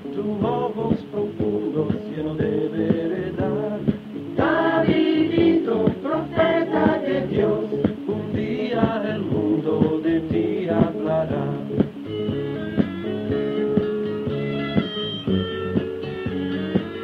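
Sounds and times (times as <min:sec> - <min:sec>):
person singing: 0:00.0 - 0:11.8.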